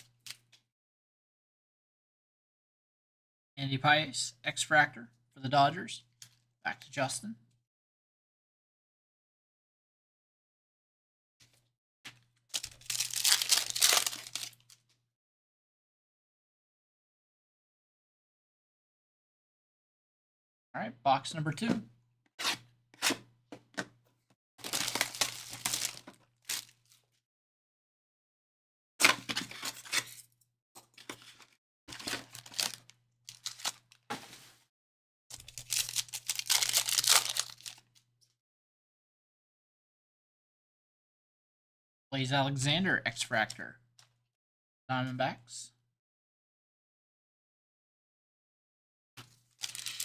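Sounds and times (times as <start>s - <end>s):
foil wrapper tearing and crinkling: 12.6s - 14.8s, 24.6s - 27.0s, 31.9s - 34.0s, 35.3s - 37.9s, 49.6s - 50.0s.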